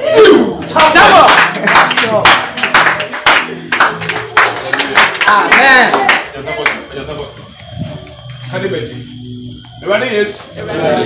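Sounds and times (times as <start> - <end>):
voices held underneath: 0.0 - 11.0
congregation clapping in time: 0.6 - 8.8.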